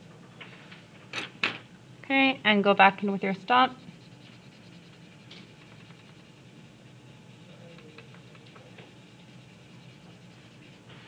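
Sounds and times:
blending stump rubbing paper: 3.1s - 11.0s.

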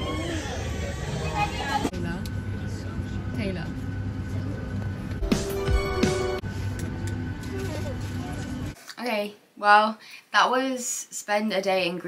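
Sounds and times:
airliner cabin drone: 0.1s - 8.8s.

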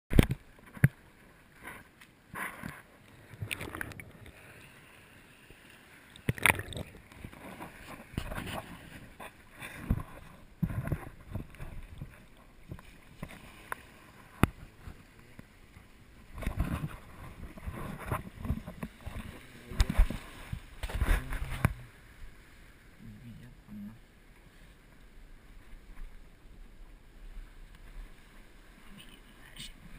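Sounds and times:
water splashing: 0.1s - 29.9s.

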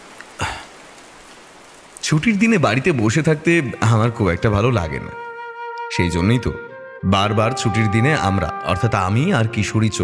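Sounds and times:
steady rain falling: 0.0s - 5.2s.

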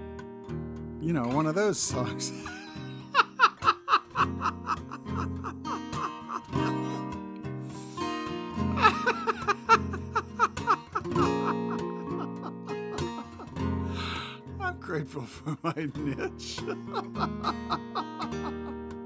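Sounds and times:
fingerpicked acoustic guitar: 0.0s - 19.0s.

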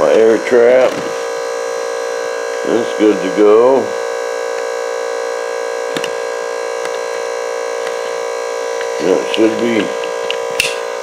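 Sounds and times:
electric fuel pump whining: 0.0s - 11.0s.

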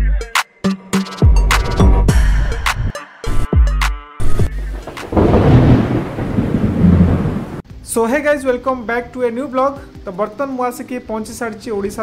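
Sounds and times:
thunder rumbling: 4.7s - 7.6s
rain: 4.7s - 8.9s.

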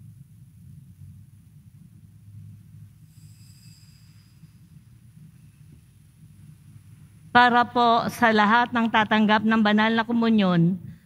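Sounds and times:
low room rumble: 0.0s - 11.0s
faint high ringing tone: 1.9s - 7.3s.

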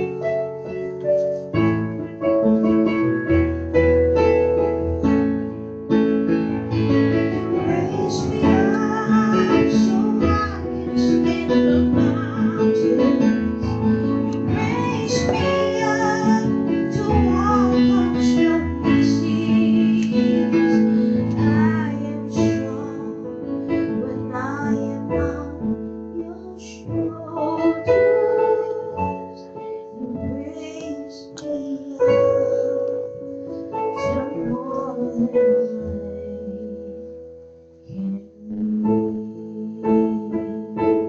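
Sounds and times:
piano accompaniment: 0.0s - 41.0s
woman singing a slow ballad: 7.3s - 33.0s, 33.9s - 37.2s, 37.8s - 41.0s.

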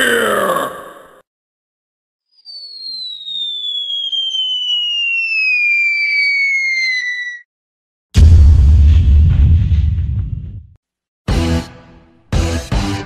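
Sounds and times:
cartoon falling bomb whistle: 2.3s - 7.5s.

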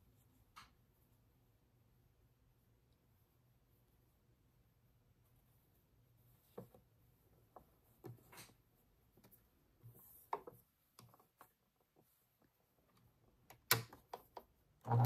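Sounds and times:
small clicks and knocks: 9.2s - 15.0s.

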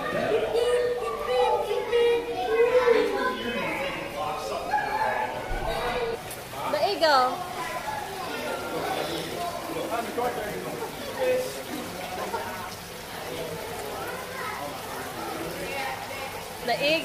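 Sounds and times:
background chatter of voices: 0.0s - 17.0s.

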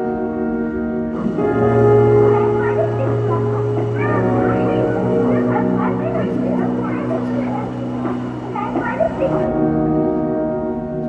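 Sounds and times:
low drone over pa: 0.0s - 11.0s.

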